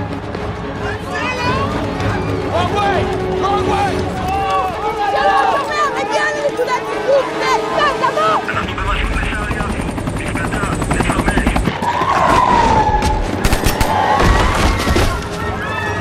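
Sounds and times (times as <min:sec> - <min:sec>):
people shouting and screaming: 0:00.8 - 0:08.4, 0:11.8 - 0:16.0
helicopter rotor pulsing: 0:01.8 - 0:14.1
sharp bangs: 0:12.1 - 0:15.5.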